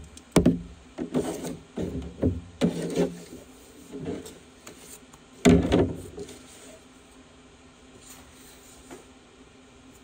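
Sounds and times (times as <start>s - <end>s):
rubbing and scraping on hard surface: 1.0s - 5.1s.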